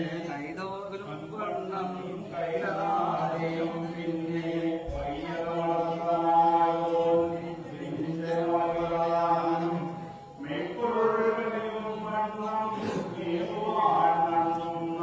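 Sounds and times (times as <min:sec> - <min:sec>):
men chanting in unison: 0:00.0 - 0:15.0.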